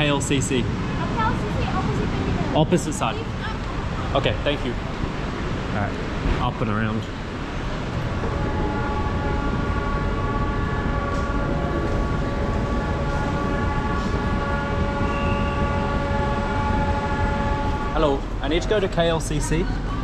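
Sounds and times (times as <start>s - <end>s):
escalator humming and whining: 0.0s - 20.0s.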